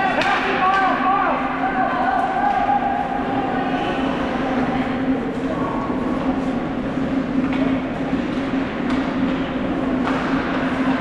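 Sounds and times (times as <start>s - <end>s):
steady rink hum: 0.0s - 11.0s.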